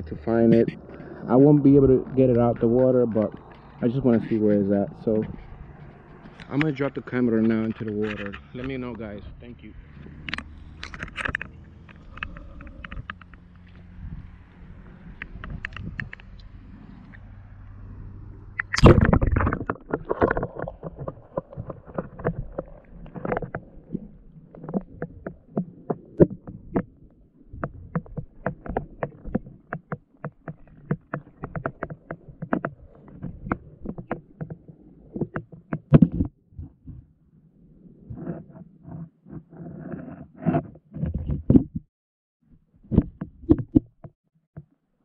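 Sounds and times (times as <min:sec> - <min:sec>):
camera knocking on rocks underwater: 0:15.2 - 0:16.4, 0:18.6 - 0:37.0, 0:40.9 - 0:41.8, 0:42.9 - 0:44.7
underwater splash: 0:18.5 - 0:34.2.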